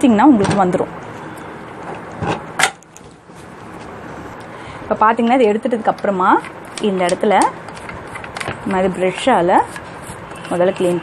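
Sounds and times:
person speaking: 4.9s - 7.6s, 8.6s - 11.0s
brush scrubbing metal: 8.0s - 11.0s.

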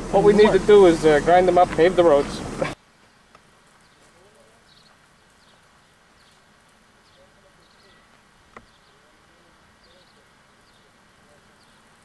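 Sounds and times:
small birds chirping: 0.0s - 12.0s
faint distant voices: 3.9s - 5.0s, 6.8s - 12.0s.

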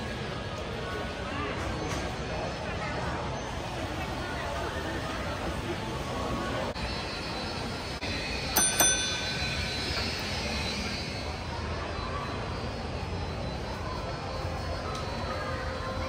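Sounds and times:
background hum and murmur: 0.0s - 16.0s
bell-like metallic strikes: 8.6s - 10.3s.

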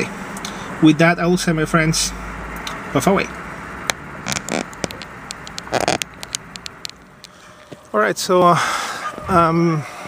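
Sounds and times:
lip-smacking clicks: 3.9s - 7.4s.

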